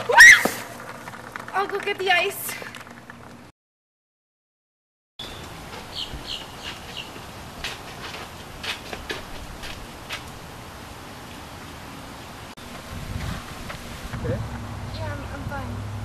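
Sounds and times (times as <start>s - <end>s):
bird chirping: 5.2s - 7.2s.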